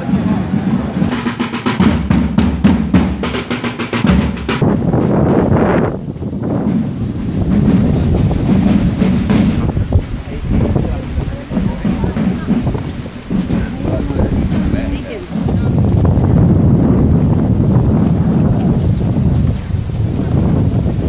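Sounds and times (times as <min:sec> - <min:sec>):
marching drums beating: 0:00.0 - 0:18.4.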